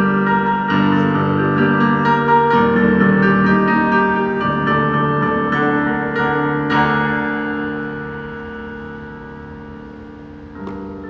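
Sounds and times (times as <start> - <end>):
piano chord held: 0.0 - 11.0.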